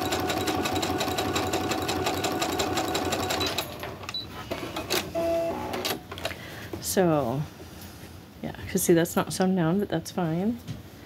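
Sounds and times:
sewing machine running: 0.0s - 3.8s.

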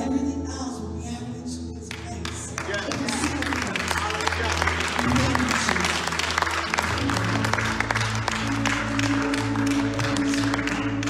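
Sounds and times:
worship band keyboard and bass: 0.0s - 11.0s
people clapping along: 1.9s - 11.0s.

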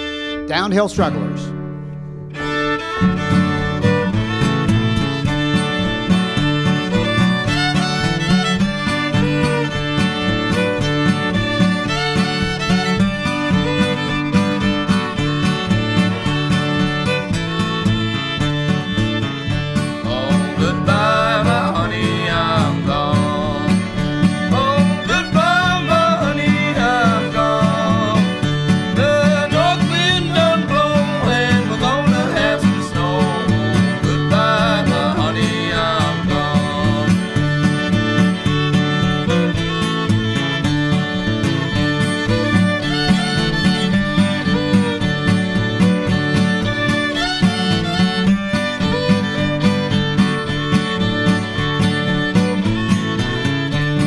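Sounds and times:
fiddle melody: 0.0s - 54.0s
string band playing: 0.0s - 54.0s.

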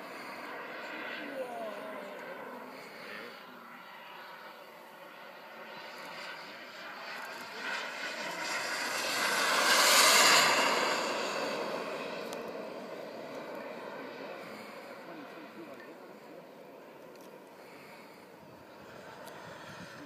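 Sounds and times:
model jet engine passing: 0.0s - 20.0s.

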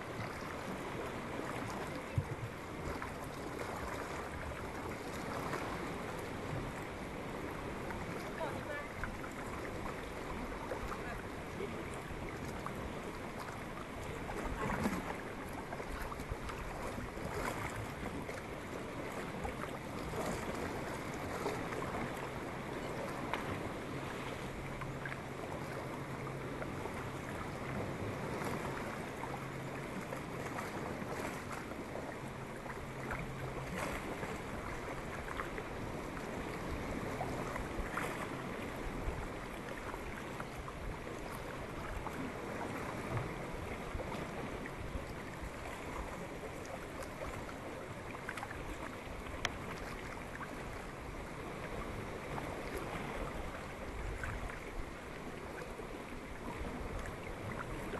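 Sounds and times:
paddle blades dipping and dripping: 0.0s - 57.9s
water moving along hull: 0.0s - 57.9s
small splashes: 45.1s - 50.9s.

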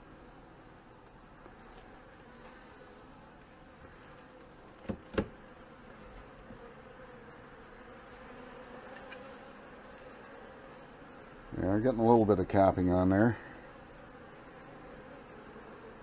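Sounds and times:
bees buzzing: 0.0s - 16.0s.

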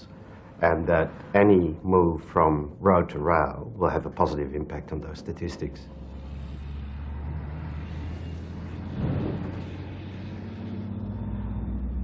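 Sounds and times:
diesel locomotive engine drone: 0.0s - 12.0s.

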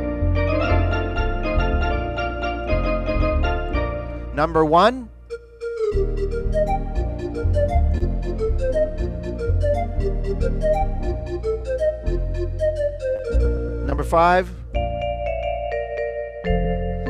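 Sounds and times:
guitar accompaniment: 0.0s - 4.4s
organ pan flute melody: 0.0s - 17.0s
pedal bass notes: 0.0s - 17.0s.

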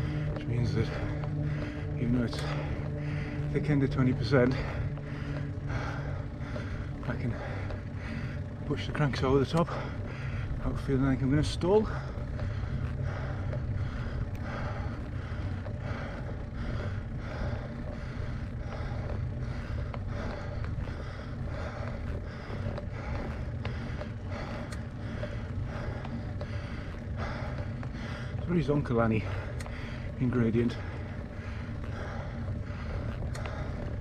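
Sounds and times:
faint rhythmic pedalling pulse: 0.0s - 34.0s
road and wind rumble: 0.0s - 34.0s.

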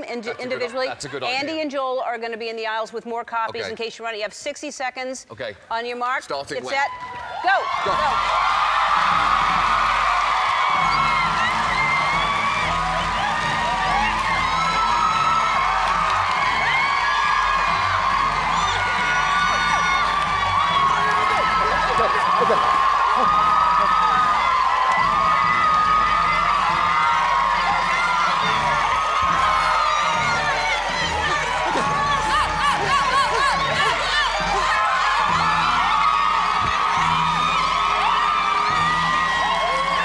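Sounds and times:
audience cheering and shrieking: 6.8s - 40.0s
background music with steady beat: 7.8s - 40.0s.

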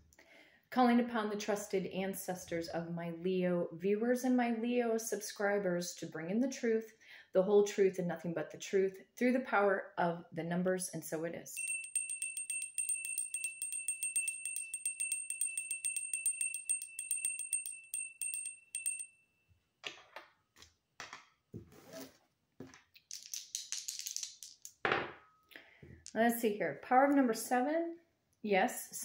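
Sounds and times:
hand bell ringing: 11.6s - 19.2s.

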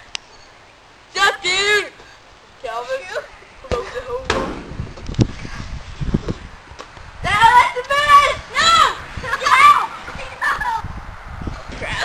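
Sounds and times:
child yelling: 1.2s - 2.0s, 7.2s - 10.9s.

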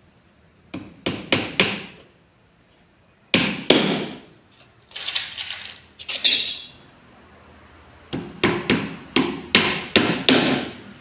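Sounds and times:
hammer striking nails into wood: 0.7s - 1.9s, 3.3s - 4.2s, 8.1s - 10.8s.

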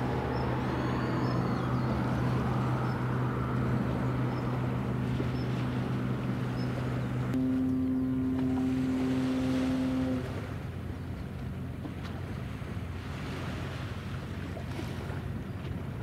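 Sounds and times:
low steady horn tone: 7.2s - 10.8s
ship whistle blast: 7.4s - 10.6s.

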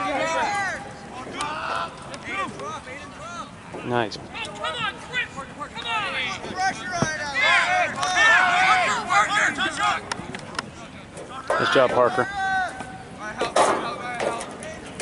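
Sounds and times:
people shouting calls: 0.0s - 15.0s.

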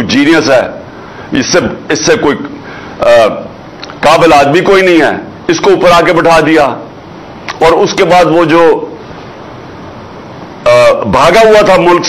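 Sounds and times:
man speaking: 0.0s - 6.9s, 7.5s - 9.0s, 10.6s - 12.0s
recording hiss: 0.0s - 12.0s.

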